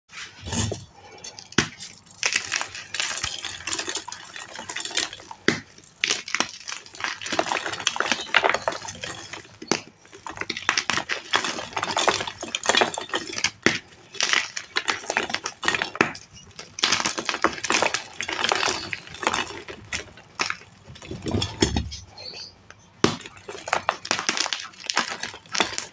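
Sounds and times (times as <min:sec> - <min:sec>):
chalk crunching: 0:00.1 - 0:12.9.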